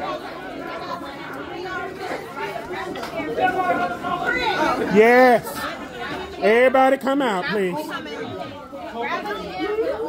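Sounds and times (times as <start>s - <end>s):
people chatting: 0.0s - 10.0s.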